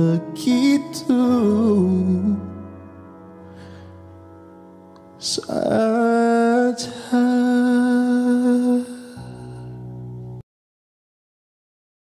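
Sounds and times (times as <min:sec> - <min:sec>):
man singing a long note: 0:00.0 - 0:02.7, 0:05.2 - 0:09.7.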